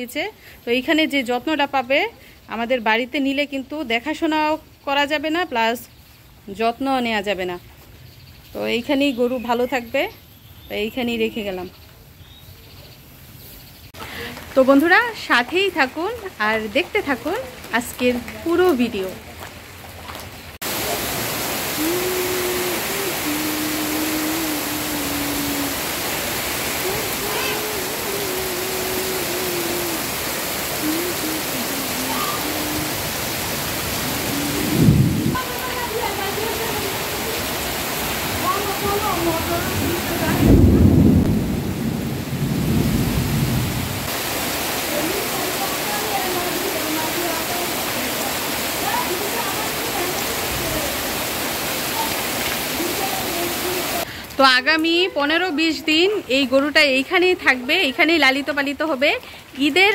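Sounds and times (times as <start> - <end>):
heavy rain pouring: 13.9 - 59.9
thunder rolling: 34.2 - 35.7, 38.4 - 44.1.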